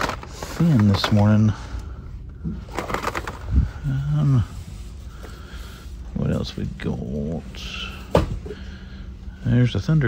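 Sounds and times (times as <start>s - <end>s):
cardboard packages clicking on hooks: 0.0s - 1.4s.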